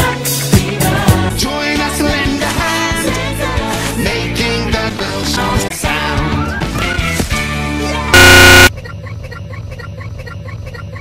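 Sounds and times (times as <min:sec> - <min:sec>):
harsh distorted buzzer blare: 0:08.2 - 0:08.7.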